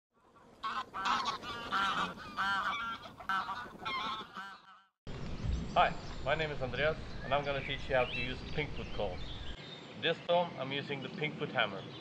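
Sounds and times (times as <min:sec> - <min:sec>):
goose call honks: 0:00.6 - 0:04.9
man talking: 0:05.8 - 0:09.3, 0:10.0 - 0:12.0.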